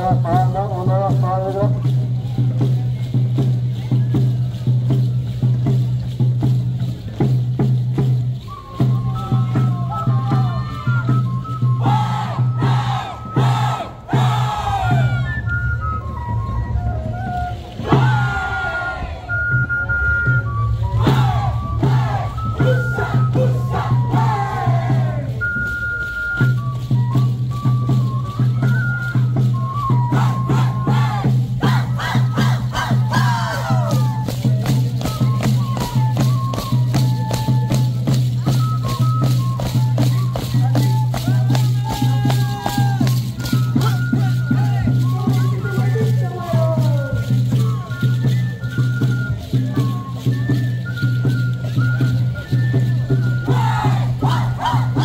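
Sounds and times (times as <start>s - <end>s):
rhythmic percussion: 0.0s - 55.0s
high whooping shouts: 11.8s - 15.4s, 20.9s - 25.4s, 30.2s - 34.0s, 53.5s - 55.0s.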